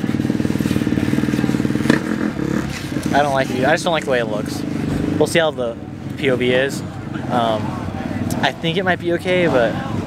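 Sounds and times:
dirt bike engine running: 0.0s - 6.4s.

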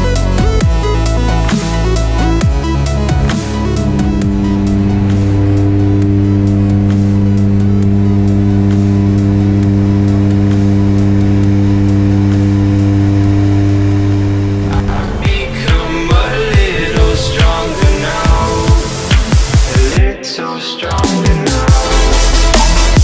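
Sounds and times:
turboprop airplane engine drone: 0.0s - 20.0s
background music: 0.0s - 23.0s.

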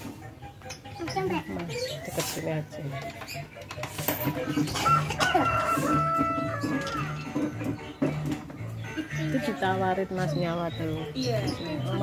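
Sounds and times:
rooster crowing: 4.8s - 7.2s.

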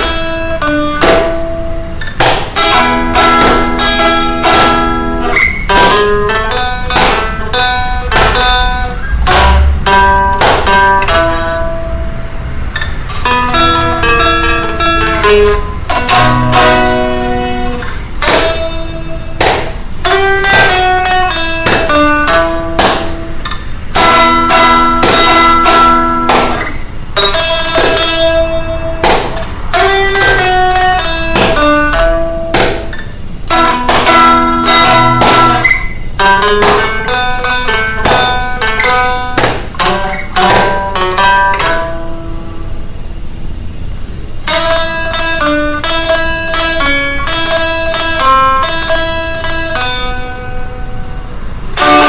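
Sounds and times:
blues guitar lead: 0.0s - 52.0s.

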